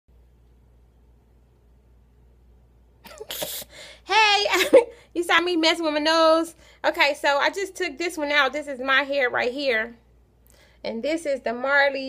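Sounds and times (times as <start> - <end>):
woman sneezing: 3.0 - 3.8.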